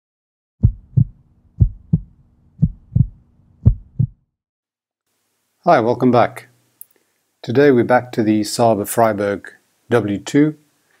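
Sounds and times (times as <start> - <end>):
heartbeat double thumps: 0.6 - 4.3.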